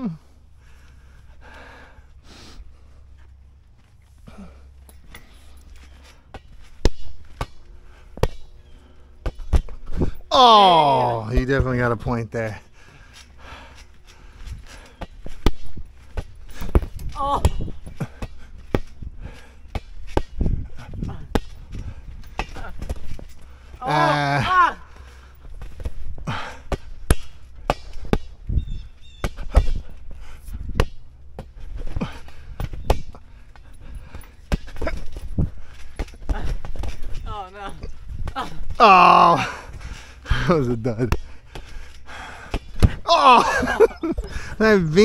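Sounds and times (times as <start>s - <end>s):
thumps of bouncing on trampoline: 6.3s - 8.5s, 9.2s - 12.1s, 15.0s - 19.1s, 19.7s - 39.6s, 41.0s - 44.3s.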